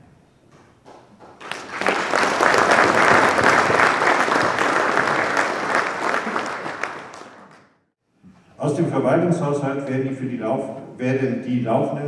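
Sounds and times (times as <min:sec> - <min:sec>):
audience applauding: 0:01.2 - 0:07.8.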